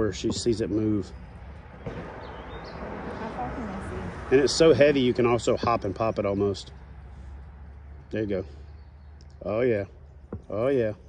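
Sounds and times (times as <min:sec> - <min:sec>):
faint bird chirp: 0:08.3 - 0:11.0.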